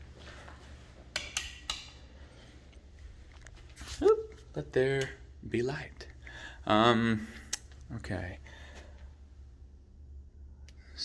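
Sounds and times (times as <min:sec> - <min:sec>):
faint low hum: 0:00.0 - 0:11.0
light switch clicking: 0:01.1 - 0:02.0.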